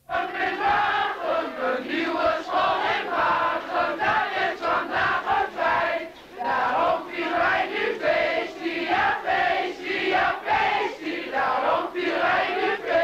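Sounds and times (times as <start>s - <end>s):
children singing or chanting: 0.0s - 13.0s.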